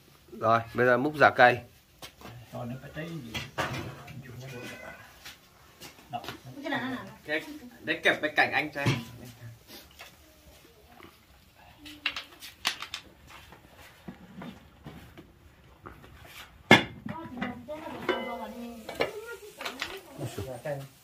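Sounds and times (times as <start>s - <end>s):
metal pots and utensils clanking: 3.2s - 5.0s, 8.8s - 9.3s, 16.7s - 19.2s.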